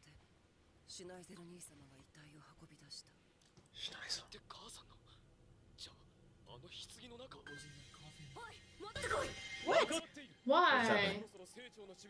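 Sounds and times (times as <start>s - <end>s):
faint whispered speech: 1.5s - 5.2s.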